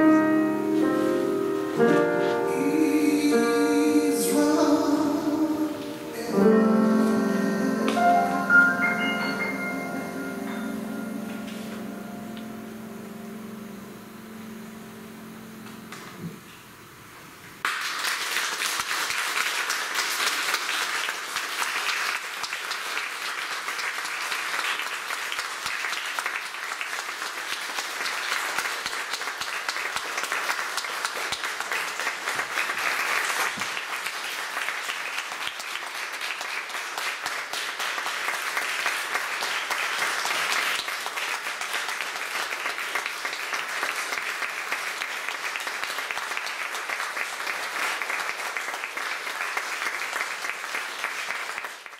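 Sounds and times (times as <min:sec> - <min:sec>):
audience applauding: 0:17.6 - 0:51.9.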